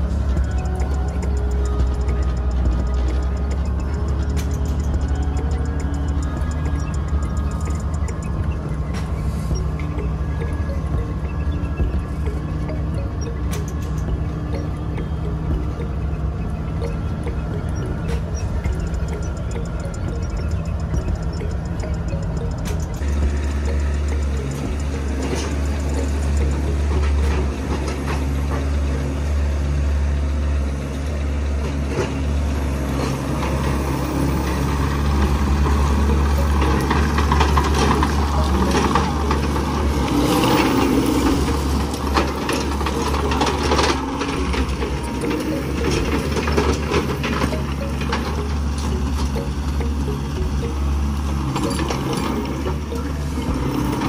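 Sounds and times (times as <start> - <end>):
music playing: 0.0 - 31.2, 32.7 - 54.0
tractor engine running: 0.0 - 54.0.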